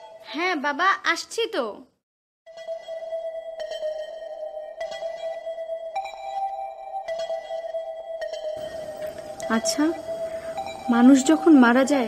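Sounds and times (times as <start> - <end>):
soft higher synth chords: 2.5 - 12.0
held synth drone: 3.6 - 12.0.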